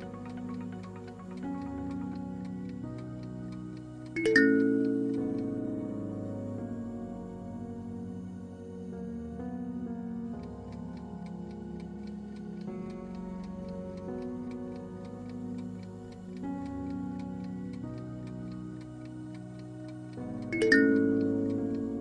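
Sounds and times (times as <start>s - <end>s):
clock-like ticking: 0.0s - 5.8s, 10.6s - 22.0s
soft background music: 0.0s - 22.0s.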